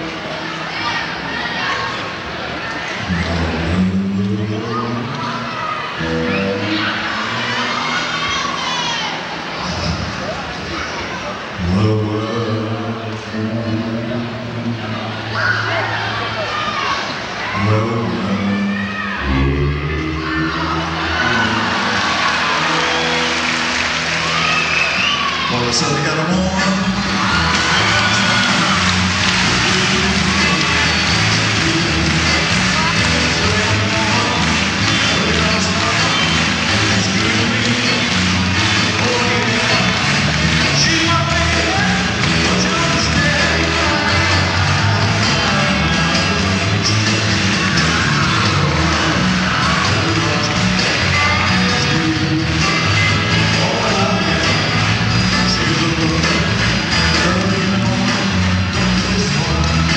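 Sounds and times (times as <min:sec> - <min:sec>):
crowd cheering: 0:00.0 - 0:59.9
lead vocal singing: 0:11.6 - 0:15.1, 0:17.4 - 0:23.7, 0:24.7 - 0:59.9
rock band playing live: 0:20.0 - 0:59.9.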